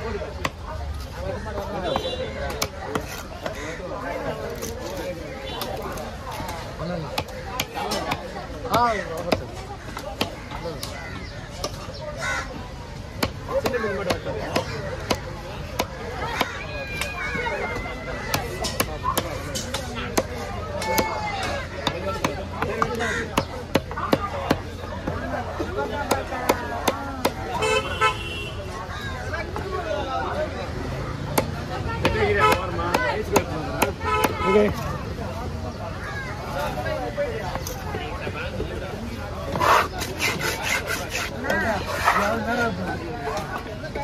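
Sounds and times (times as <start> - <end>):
knife chopping fish on wood: 13.2 - 17.1, 18.2 - 25.2, 26.0 - 27.5, 31.3 - 34.8
knife scraping wooden chopping block: 39.5 - 42.8.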